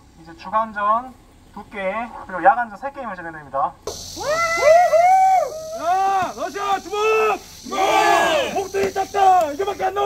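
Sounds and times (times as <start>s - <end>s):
man shouting through megaphone: 4.2s - 10.0s.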